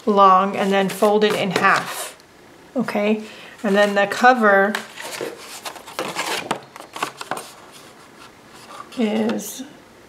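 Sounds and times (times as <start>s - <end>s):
stiff paper rustling and scraping: 0.6s - 2.1s, 3.6s - 9.3s.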